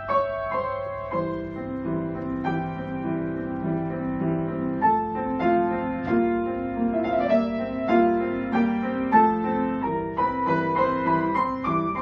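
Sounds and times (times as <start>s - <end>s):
grand piano playing: 0.0s - 12.0s.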